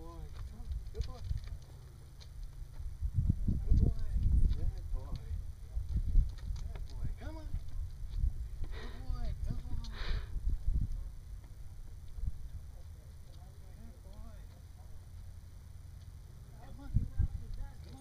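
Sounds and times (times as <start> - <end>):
wind rumbling on microphone: 2.4 - 12.8, 16.6 - 18.0.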